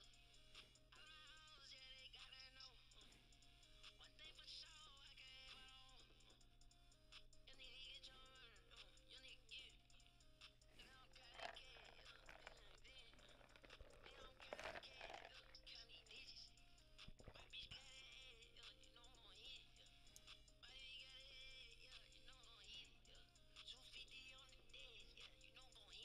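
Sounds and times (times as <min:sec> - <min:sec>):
faint hip-hop beat: 0:00.0 - 0:26.0.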